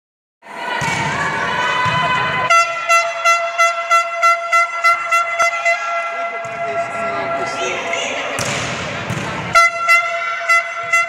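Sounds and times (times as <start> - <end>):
crowd noise in a sports hall: 0.4 - 11.0
horn sounding a steady note: 2.5 - 8.0, 9.5 - 11.0.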